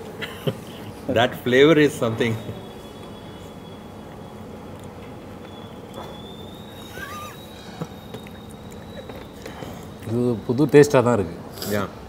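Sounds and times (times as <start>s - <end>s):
faint steady high whine: 0.0s - 12.0s
high wavering animal call: 5.5s - 9.9s.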